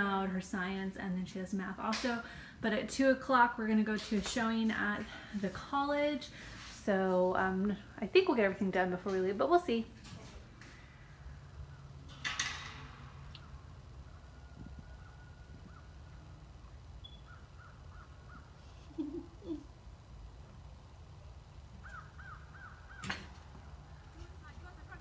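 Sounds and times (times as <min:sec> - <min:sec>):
crows cawing: 0:17.3 - 0:18.6, 0:21.8 - 0:24.1.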